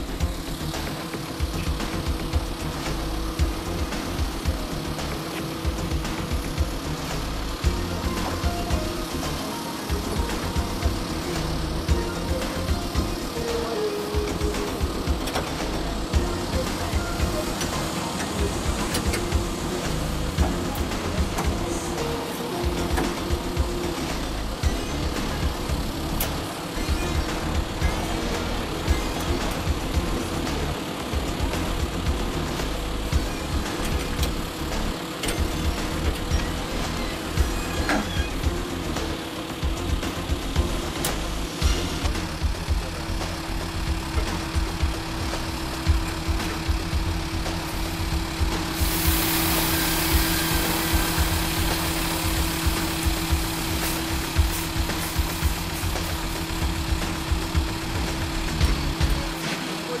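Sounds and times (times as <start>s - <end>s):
truck engine idling: 0.0s - 60.0s
hiss: 41.0s - 60.0s.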